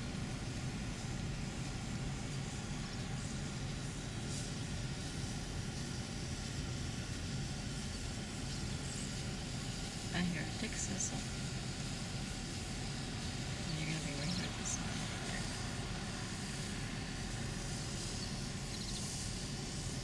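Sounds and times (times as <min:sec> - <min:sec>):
hiss: 0:00.0 - 0:20.0
low rumble of vehicle noise: 0:00.0 - 0:20.0.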